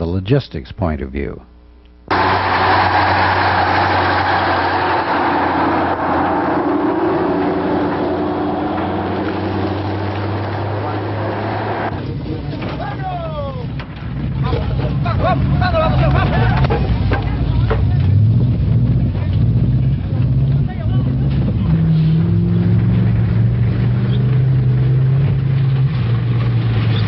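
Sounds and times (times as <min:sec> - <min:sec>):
deep engine rumble: 0:02.1 - 0:27.0
truck engines droning: 0:02.1 - 0:27.0
voices: 0:10.0 - 0:18.2.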